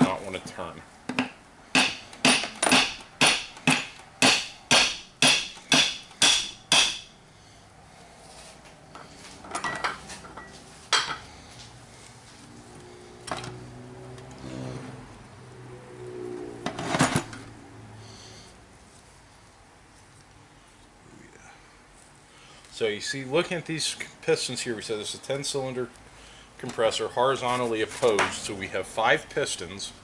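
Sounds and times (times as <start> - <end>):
hammer striking metal housing: 1.8 - 7.1.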